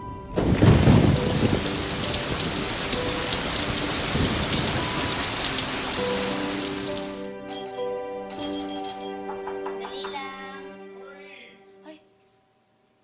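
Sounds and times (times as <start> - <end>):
thunder rumble: 0.1 - 7.2
heavy rain falling: 0.4 - 7.3.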